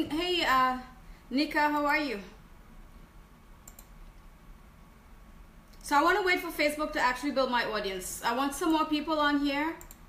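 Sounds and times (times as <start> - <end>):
faint computer clicks: 3.6 - 4.3, 9.8 - 10.0.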